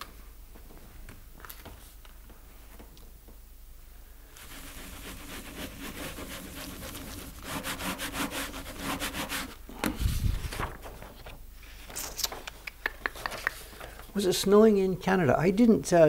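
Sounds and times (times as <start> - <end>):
baren rubbing on paper: 4.4 - 9.6
paper handling: 10.2 - 12.4.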